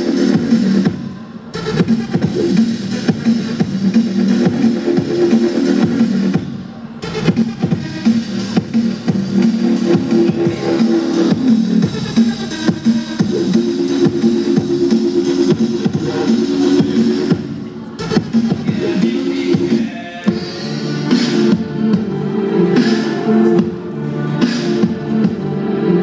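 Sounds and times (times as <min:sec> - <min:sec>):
electronic dance music: 0:00.0 - 0:26.0.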